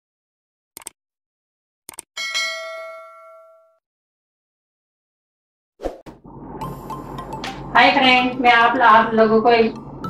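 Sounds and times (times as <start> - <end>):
notification bell ding: 2.2 - 3.8.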